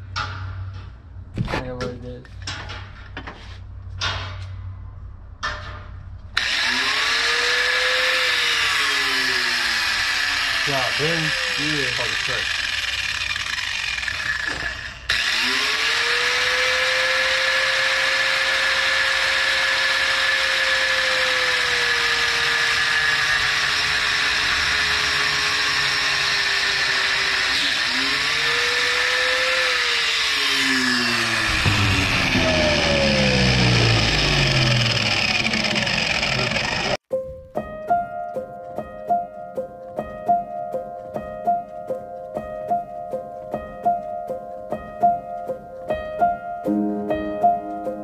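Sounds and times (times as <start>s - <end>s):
electric grinder on metal: 6.4s - 37.0s.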